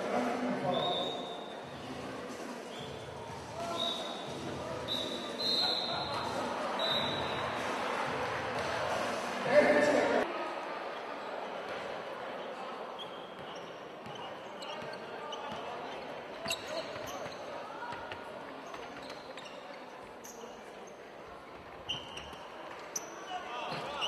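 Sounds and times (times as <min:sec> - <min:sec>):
chatter of voices: 0:00.0 - 0:13.0.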